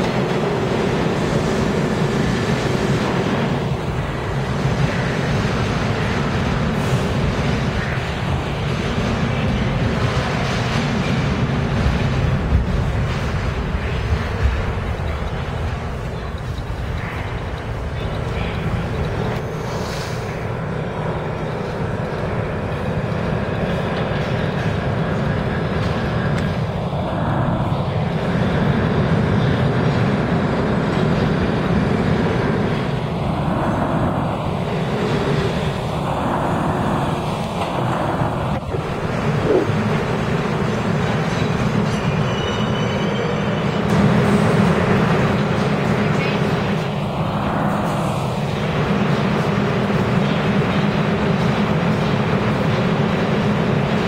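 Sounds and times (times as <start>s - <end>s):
subway train rumbling: 0.0s - 54.0s
train cars whooshing past: 0.0s - 54.0s.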